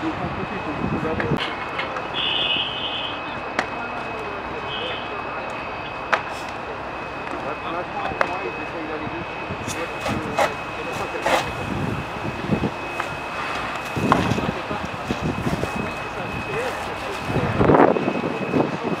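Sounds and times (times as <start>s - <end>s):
constant high whine: 0.0s - 19.0s
steady noisy rush: 0.0s - 19.0s
voices: 0.0s - 19.0s.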